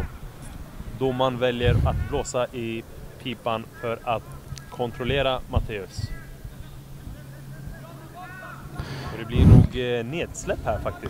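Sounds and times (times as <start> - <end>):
distant voices calling out: 0.0 - 11.0
low steady hum: 0.0 - 11.0.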